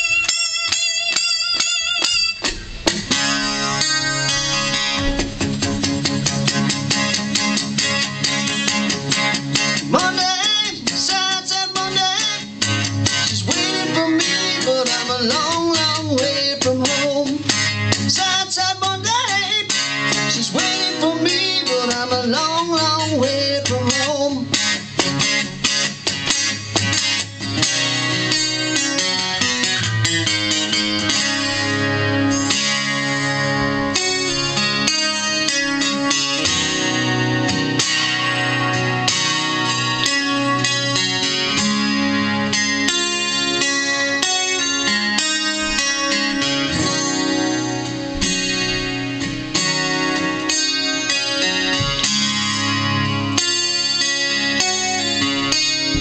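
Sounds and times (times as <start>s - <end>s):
acoustic guitar strummed fast: 0.0s - 56.0s.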